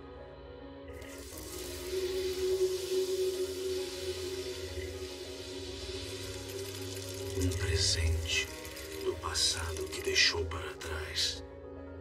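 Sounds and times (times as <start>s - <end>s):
rushing hiss: 1.0s - 10.3s
low drone of held tones: 1.1s - 8.6s.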